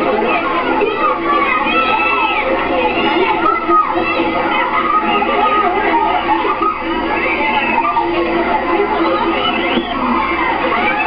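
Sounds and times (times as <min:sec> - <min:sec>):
crowd shouting: 0:00.0 - 0:11.0.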